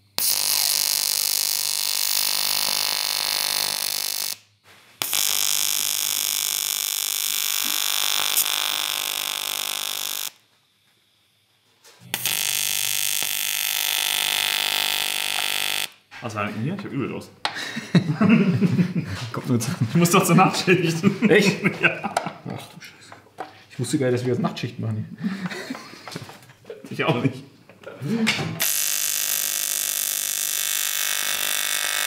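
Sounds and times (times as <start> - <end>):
welding arc buzzing: 0.0 - 10.6, 11.8 - 16.1, 28.6 - 32.0.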